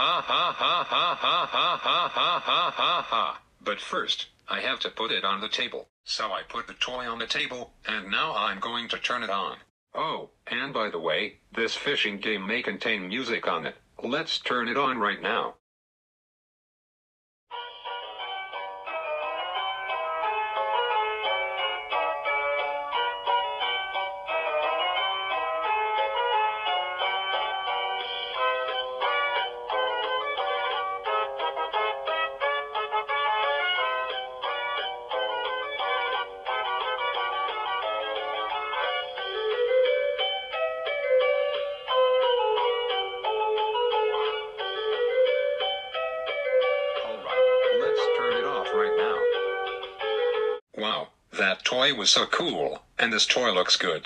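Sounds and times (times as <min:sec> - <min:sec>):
plucked string melody: 0:42.2 - 0:50.3.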